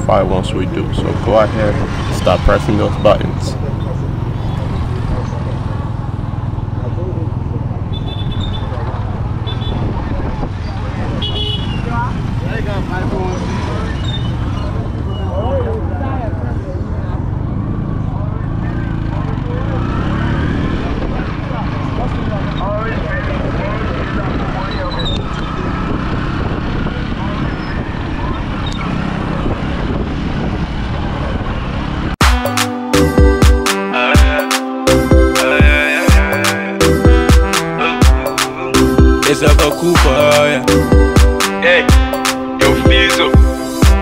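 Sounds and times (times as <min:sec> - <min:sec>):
people talking: 0:00.0 - 0:05.9, 0:20.8 - 0:25.2, 0:37.8 - 0:40.8, 0:42.6 - 0:44.0
traffic rumble of motorbikes and cars: 0:00.0 - 0:32.2.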